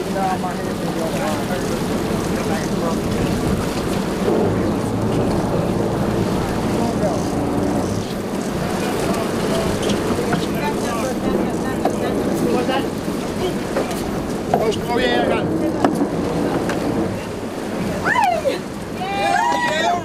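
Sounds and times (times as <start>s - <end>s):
boat engines idling: 0.0s - 20.0s
wind buffeting microphone: 0.0s - 20.0s.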